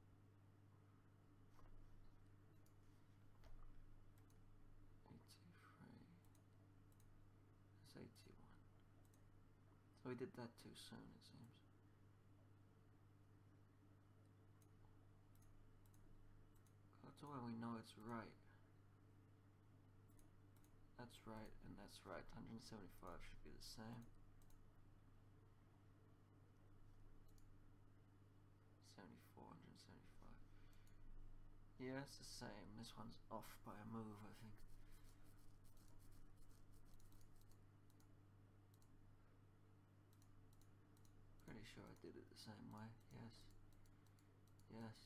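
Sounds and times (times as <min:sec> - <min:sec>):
low electrical hum: 0:00.0 - 0:45.0
faint mouse clicks: 0:01.5 - 0:04.4, 0:06.2 - 0:07.1, 0:08.8 - 0:09.3, 0:14.6 - 0:16.8, 0:23.1 - 0:24.6, 0:27.2 - 0:27.6, 0:30.6 - 0:31.2, 0:34.2 - 0:39.0, 0:40.1 - 0:45.0.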